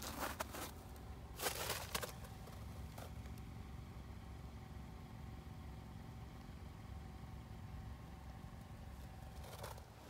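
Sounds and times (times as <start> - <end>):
faint steady hum: 0.0 - 10.0
low outdoor rumble: 0.0 - 10.0.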